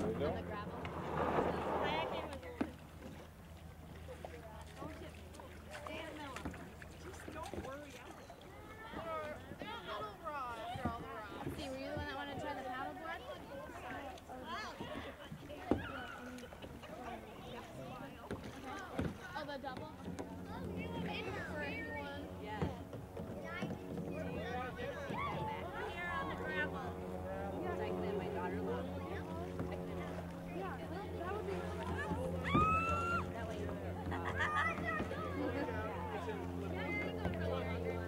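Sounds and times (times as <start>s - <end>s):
people talking: 0.0s - 2.8s, 4.0s - 38.0s
canoe being pushed off shore: 0.0s - 12.5s
canoe paddling: 0.0s - 38.0s
faint distant voices: 0.0s - 38.0s.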